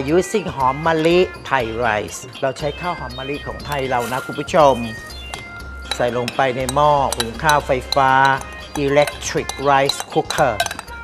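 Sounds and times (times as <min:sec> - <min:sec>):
man speaking: 0:00.0 - 0:05.0, 0:06.0 - 0:10.6
background music: 0:00.0 - 0:11.0
clinks of glass and metal dishes: 0:03.7 - 0:11.0.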